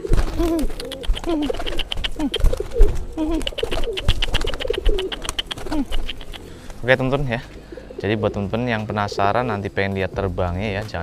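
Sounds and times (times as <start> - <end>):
rapid wing fluttering: 0.0 - 7.6
pigeons cooing: 0.0 - 10.7.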